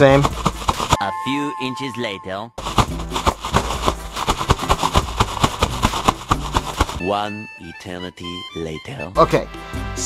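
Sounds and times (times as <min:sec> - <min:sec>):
bubble wrap crinkling: 0:00.2 - 0:01.0, 0:02.6 - 0:07.0.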